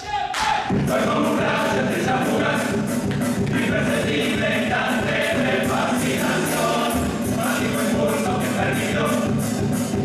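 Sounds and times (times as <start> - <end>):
chorus singing in full voice: 0.1 - 9.3.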